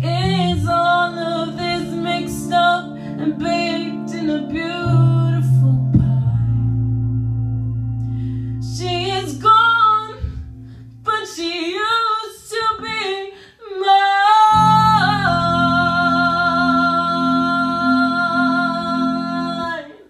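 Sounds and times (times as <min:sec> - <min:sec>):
woman singing into a microphone: 0:00.0 - 0:06.9, 0:08.6 - 0:20.0
sustained instrumental chord: 0:00.5 - 0:11.1.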